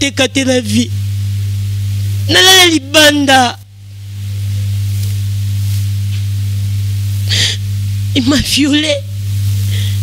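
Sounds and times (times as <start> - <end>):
steady low hum: 0.0 - 10.0
sharp intake of breath: 7.2 - 7.7, 9.6 - 10.0.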